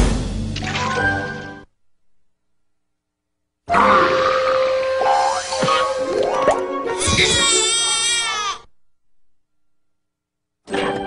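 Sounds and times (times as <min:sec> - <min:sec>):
cartoon character crying wail: 0:07.0 - 0:08.7.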